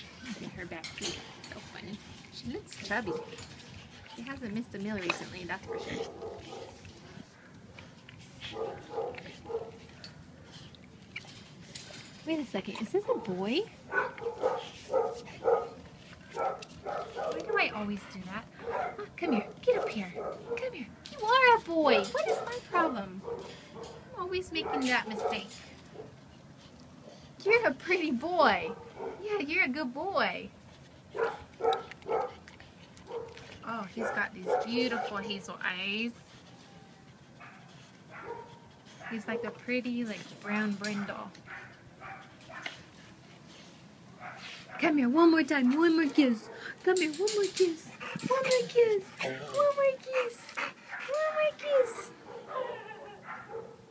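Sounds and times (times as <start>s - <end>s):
faint dog sounds: 1.9s - 11.3s, 30.8s - 42.9s, 45.6s - 53.9s
dog barking: 5.7s - 6.8s, 8.5s - 9.8s, 13.9s - 15.8s, 16.4s - 17.5s, 18.6s - 19.0s, 28.7s - 29.2s, 31.2s - 32.4s, 33.1s - 33.4s, 34.0s - 35.2s, 37.4s - 39.5s, 41.5s - 42.7s, 52.3s - 53.8s.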